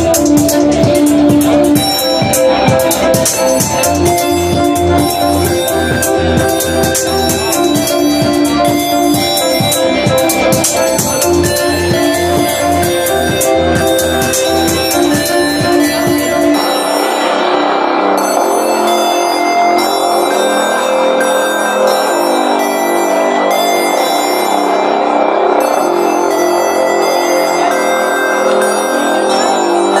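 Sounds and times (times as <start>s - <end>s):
kick drum: 0.0s - 16.7s
choppy stuttering high sounds: 0.0s - 30.0s
sustained electronic tones: 0.0s - 30.0s.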